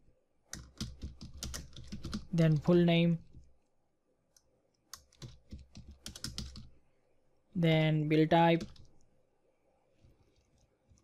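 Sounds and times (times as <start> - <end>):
computer keyboard typing: 0.5 - 3.5, 4.9 - 6.7, 8.5 - 9.0.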